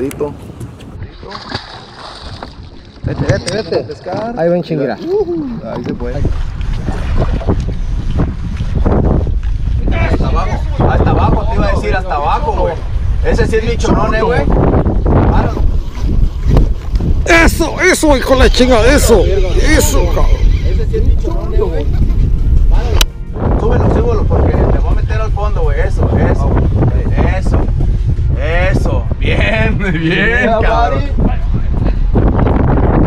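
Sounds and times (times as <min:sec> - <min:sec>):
wind: 0:00.0 - 0:33.0
water washing along boat: 0:01.2 - 0:19.2.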